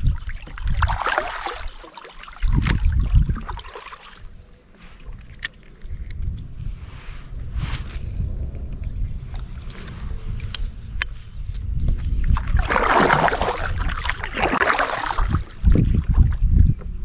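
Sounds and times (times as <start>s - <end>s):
paddle splashing water: 0.0s - 5.5s, 12.1s - 16.4s
wind on microphone: 0.0s - 17.0s.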